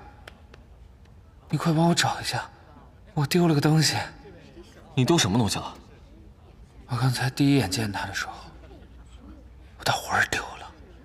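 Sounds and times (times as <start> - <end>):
person whispering: 9.8 - 10.8.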